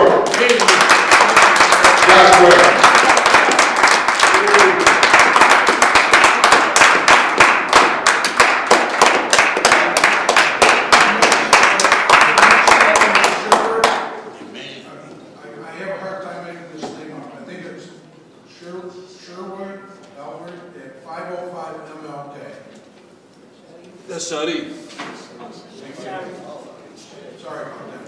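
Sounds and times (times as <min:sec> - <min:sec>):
audience applauding: 0:00.0 - 0:14.1.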